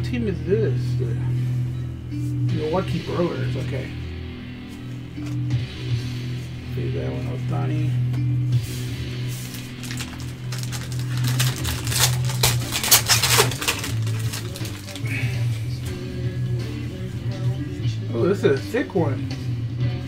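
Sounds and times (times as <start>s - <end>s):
background music with bass line: 0.0s - 20.0s
foil wrapper crinkling: 9.4s - 15.2s.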